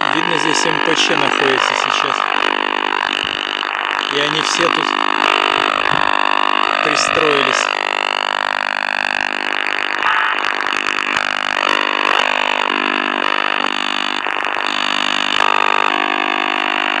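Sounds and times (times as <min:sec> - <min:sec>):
harsh radar buzz on radio: 0:00.0 - 0:17.0.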